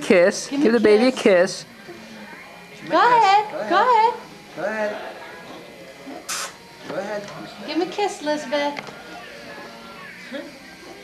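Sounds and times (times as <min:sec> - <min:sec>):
short hiss: 0:06.3 - 0:06.6.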